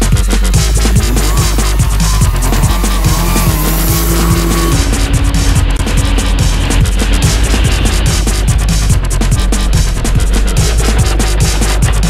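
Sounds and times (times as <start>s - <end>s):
falling bass notes: 0.0s - 11.5s
loud music with fast beat: 0.0s - 12.0s.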